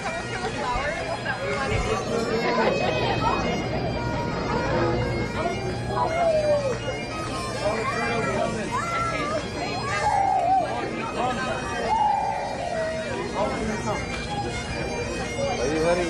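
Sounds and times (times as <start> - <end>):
bagpipes playing: 0.0 - 16.0
people talking: 0.0 - 16.0.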